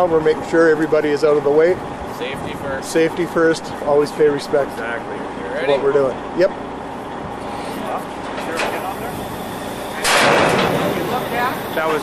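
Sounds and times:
truck engine running: 0.0s - 12.0s.

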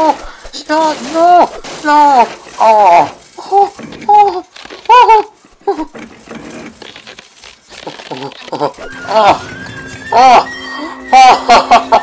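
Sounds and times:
ice cracking: 0.0s - 11.6s
cartoon voice crying oh: 8.5s - 11.6s.

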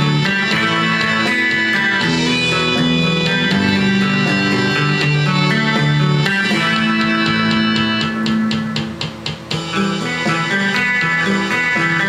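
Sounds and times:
electric guitar picked rhythm: 0.0s - 12.0s.

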